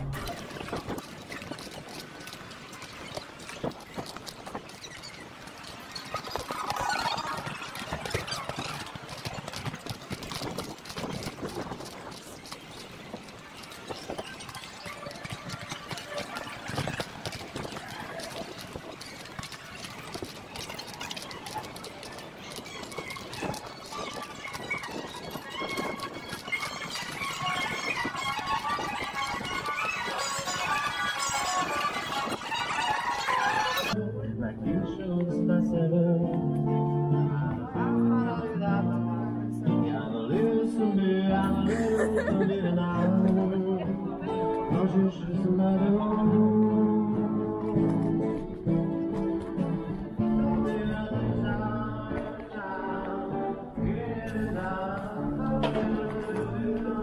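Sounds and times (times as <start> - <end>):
footsteps on stone paving: 0.0 - 34.0
street noise: 0.0 - 57.0.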